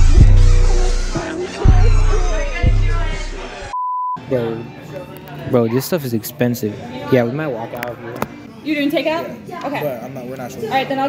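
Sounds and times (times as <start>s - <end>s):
background music: 0.0s - 6.0s
censor bleep tone: 3.7s - 4.2s.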